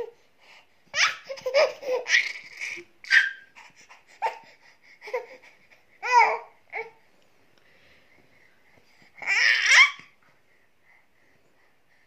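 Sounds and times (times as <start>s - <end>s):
baby laughing: 0.9s - 4.4s.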